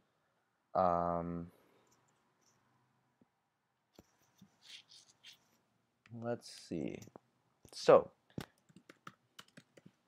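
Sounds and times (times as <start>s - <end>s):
computer keyboard keystrokes: 8.4s - 10.0s.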